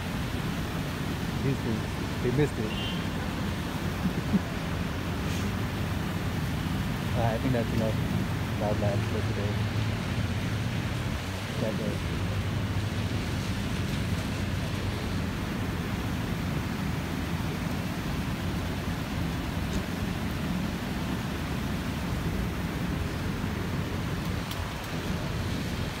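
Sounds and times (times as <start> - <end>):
steady rain: 0.0 - 26.0.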